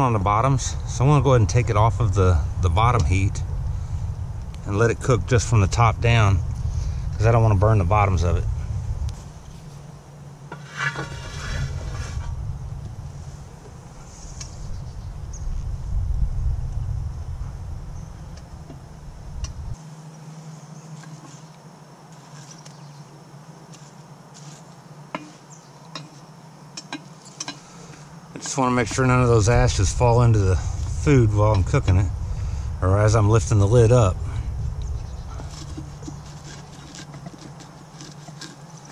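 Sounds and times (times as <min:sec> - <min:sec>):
metal handle clinking and scraping: 0:10.5 - 0:12.3, 0:35.3 - 0:38.9.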